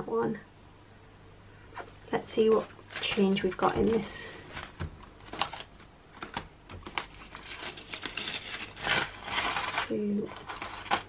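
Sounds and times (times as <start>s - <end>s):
coins clattering: 2.9s - 3.7s, 7.0s - 11.0s.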